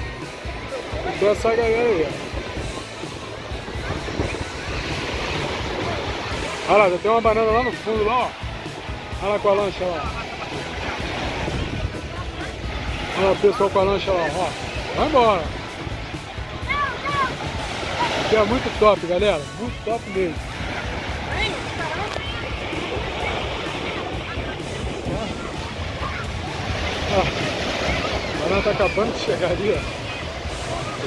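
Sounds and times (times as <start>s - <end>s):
crowd of voices: 0.0s - 31.0s
small waves breaking on sand: 0.0s - 31.0s
wind buffeting microphone: 2.1s - 6.6s, 10.0s - 13.7s.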